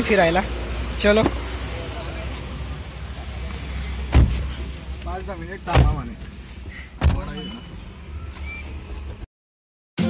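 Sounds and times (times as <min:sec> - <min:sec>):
low car hum: 0:00.0 - 0:09.3
car door shutting: 0:01.2 - 0:01.5, 0:04.0 - 0:04.6, 0:05.7 - 0:06.1, 0:07.0 - 0:07.6.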